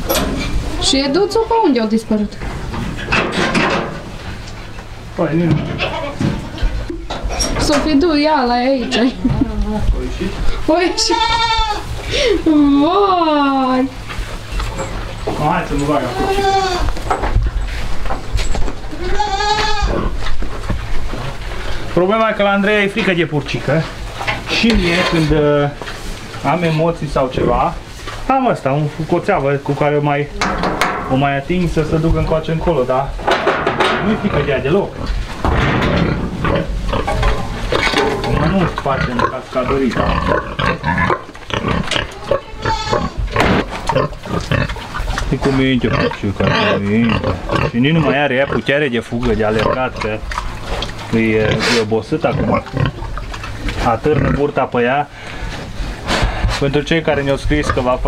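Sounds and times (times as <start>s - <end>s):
young goats bleating: 5.8s - 6.3s, 10.7s - 12.9s, 15.9s - 17.0s, 18.9s - 20.1s, 41.8s - 43.4s
pig grunting: 33.8s - 54.8s.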